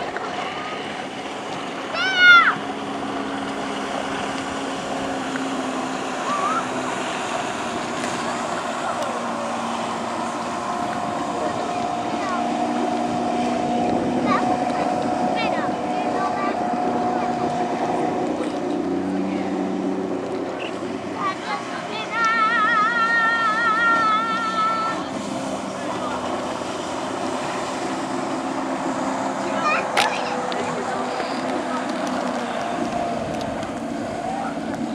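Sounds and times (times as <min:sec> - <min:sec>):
motorboat engine running: 0:00.0 - 0:34.9
rushing water: 0:00.0 - 0:34.9
wind noise on microphone: 0:30.5 - 0:34.9.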